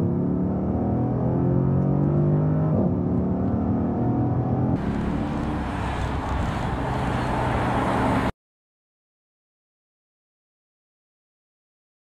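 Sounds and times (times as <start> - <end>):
car engine accelerating hard: 0.1 - 8.3.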